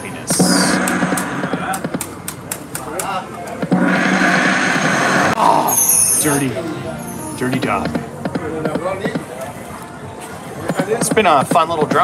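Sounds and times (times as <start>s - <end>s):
electronic hissing rush: 3.8s - 5.4s
high chiming tones: 5.4s - 8.2s.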